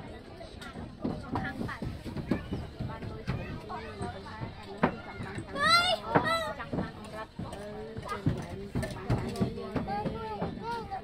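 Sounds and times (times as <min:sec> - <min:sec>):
footsteps on wooden deck: 0:00.5 - 0:11.0
children's voices: 0:02.0 - 0:07.2, 0:09.2 - 0:11.0.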